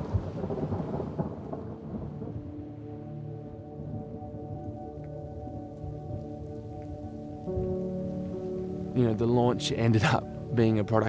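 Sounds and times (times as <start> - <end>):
faint low thunder rumble: 0.0 - 4.8
rain falling: 0.0 - 11.0
ambient music chord: 1.3 - 11.0.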